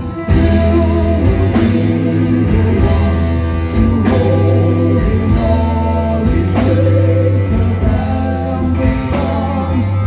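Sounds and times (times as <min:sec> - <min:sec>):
electric bass low notes: 0:00.0 - 0:10.0
person singing: 0:00.0 - 0:10.0
rock band playing live: 0:00.0 - 0:10.0.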